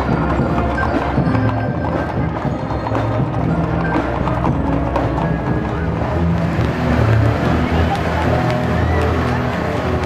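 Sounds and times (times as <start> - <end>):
people's voices: 0.0 - 10.0
vehicle engine running: 0.0 - 10.0.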